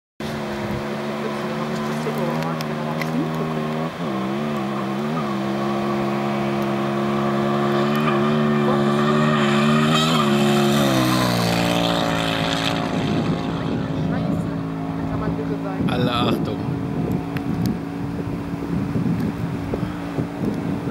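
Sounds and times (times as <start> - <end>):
motorcycle engine at high speed: 0.2 - 20.9
wind noise on microphone: 6.8 - 20.9.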